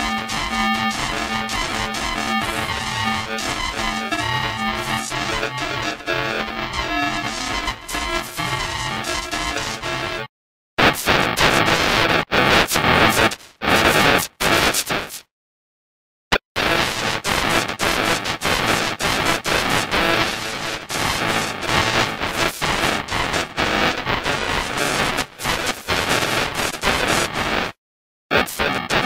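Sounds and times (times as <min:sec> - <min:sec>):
heavily distorted music: 0:00.0 - 0:11.9.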